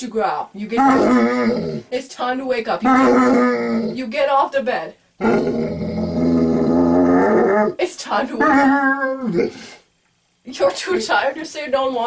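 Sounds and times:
dog growling: 0.8 - 1.9, 2.8 - 4.1, 5.2 - 7.8, 8.4 - 9.8.

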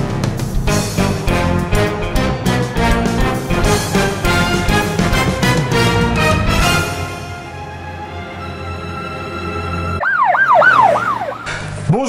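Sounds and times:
siren-like falling pitch sweeps: 8.2 - 12.0.

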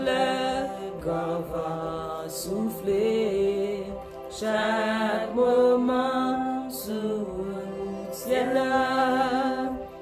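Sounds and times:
woman singing slow worship song: 0.0 - 10.0.

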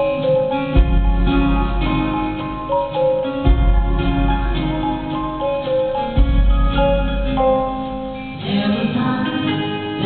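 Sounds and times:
live band playing: 0.0 - 10.0.

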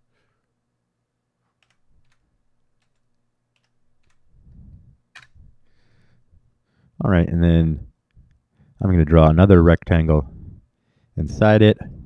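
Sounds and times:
keyboard and mouse clicks: 1.6 - 4.3, 5.1 - 5.4.

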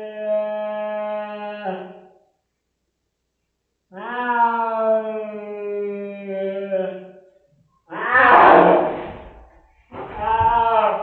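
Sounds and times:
cat yowling: 3.9 - 6.9, 7.9 - 9.1.

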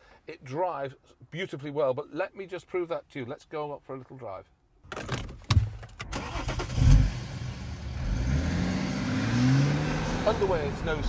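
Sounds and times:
diesel engine starting and running: 6.0 - 11.0
engine revving: 6.2 - 11.0.

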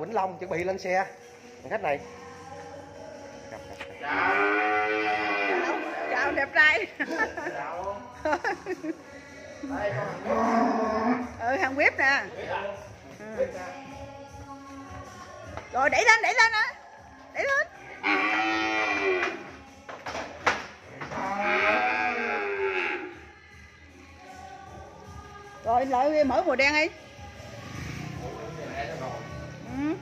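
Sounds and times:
cow mooing: 4.0 - 6.3, 9.9 - 11.4, 18.0 - 19.5, 21.1 - 23.2.

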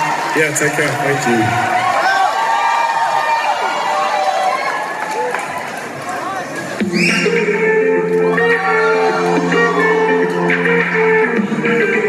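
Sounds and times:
crowd cheering and screaming: 0.0 - 12.0.

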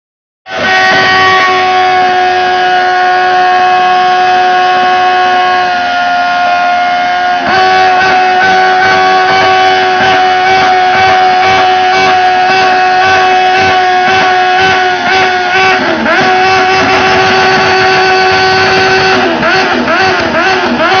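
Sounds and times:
motorcycle engine revving high: 0.5 - 21.0.

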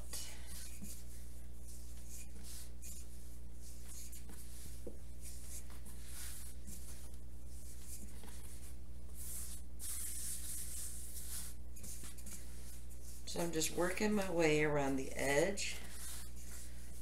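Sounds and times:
rolling pin rubbing over dough: 0.0 - 14.4, 15.5 - 17.0
steady low hum: 0.0 - 17.0.

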